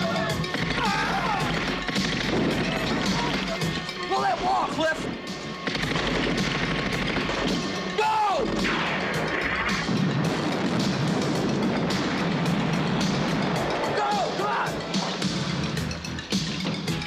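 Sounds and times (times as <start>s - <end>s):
background music: 0.0s - 17.0s
explosion blasts: 0.5s - 3.5s, 8.4s - 15.4s.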